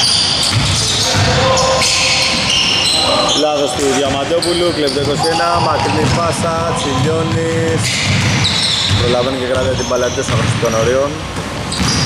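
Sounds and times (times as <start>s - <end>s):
basketball bouncing: 0.0s - 2.6s, 4.0s - 12.0s
voices calling out: 0.0s - 10.9s
sneakers squeaking on floor: 0.0s - 12.0s.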